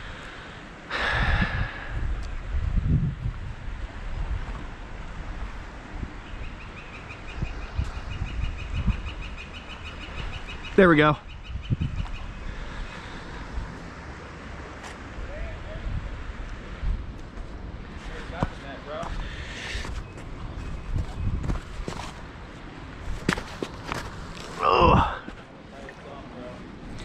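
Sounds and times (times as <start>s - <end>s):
voices: 10.6s - 11.3s, 15.1s - 16.3s, 18.0s - 19.9s, 24.5s - 26.8s
footsteps on stones: 17.3s - 22.3s, 23.1s - 24.6s
person shouting: 24.6s - 25.2s.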